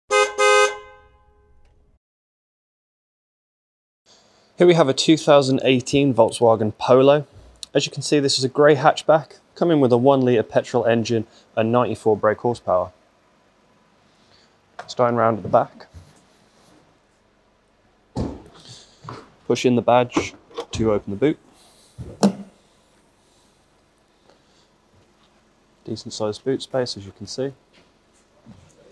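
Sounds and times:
car horn honking: 0.1s - 1.6s.

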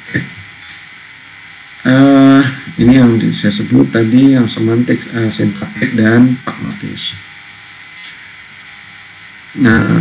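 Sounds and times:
faint electrical hum: 0.0s - 10.0s
steady low hiss: 0.0s - 10.0s.

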